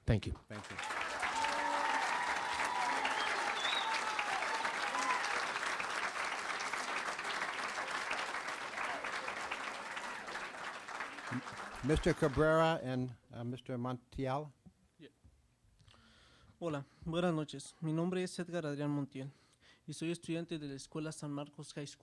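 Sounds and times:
audience applauding: 0:00.5 - 0:12.8.

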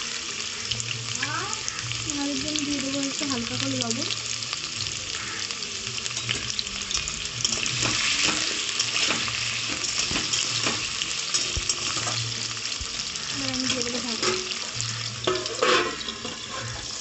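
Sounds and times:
potatoes sizzling in hot oil: 0:00.0 - 0:17.0
steel spoon scraping a pan: 0:06.0 - 0:17.0.

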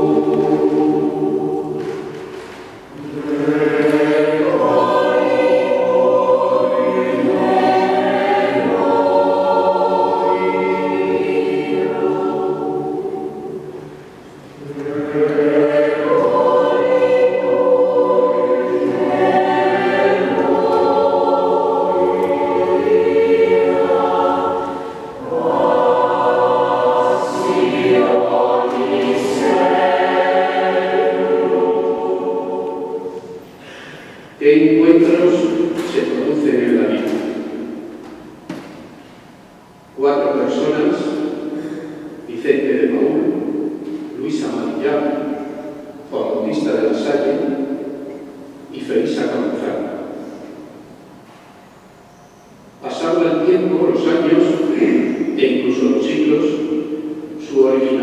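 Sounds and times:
mixed choir singing: 0:00.0 - 0:39.4, 0:52.8 - 0:58.0.

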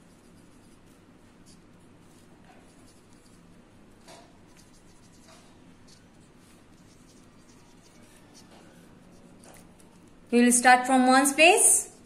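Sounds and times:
marker writing on paper: 0:00.0 - 0:10.1.

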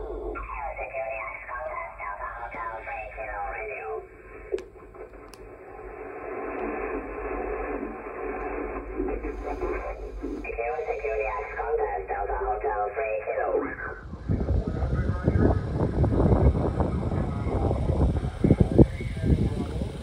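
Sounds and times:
radio band noise: 0:00.0 - 0:20.0
radio voices: 0:00.0 - 0:20.0
loud rumble: 0:13.7 - 0:20.0.

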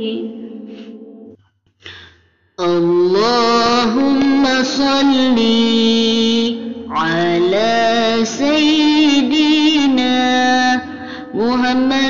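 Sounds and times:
person singing devotional chant: 0:00.0 - 0:01.3, 0:02.6 - 0:12.0.

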